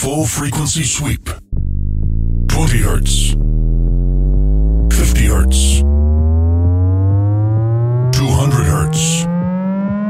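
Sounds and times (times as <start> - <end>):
rising test-tone sweep: 1.6 - 8.2.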